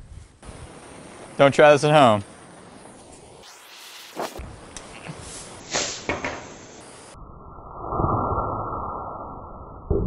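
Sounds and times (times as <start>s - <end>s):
fuse hissing: 1.9s - 7.2s.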